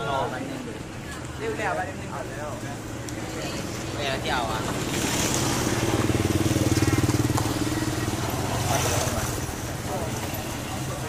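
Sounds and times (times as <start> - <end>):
motorcycle engine passing: 3.6 - 11.0.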